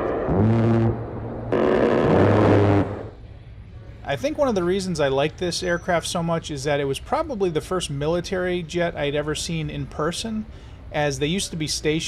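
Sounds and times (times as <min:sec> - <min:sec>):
rotary cannon firing burst: 0:00.0 - 0:03.1.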